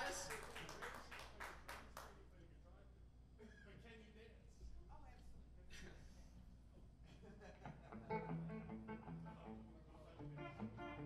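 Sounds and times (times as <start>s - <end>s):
electric guitars playing quietly: 7.7s - 11.0s.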